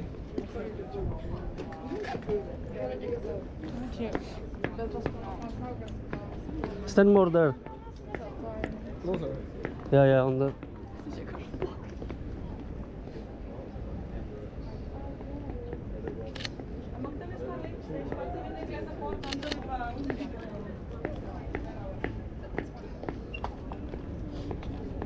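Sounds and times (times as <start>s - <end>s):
faint voices: 0.0s - 25.0s
camera shutter clicks: 19.2s - 19.6s.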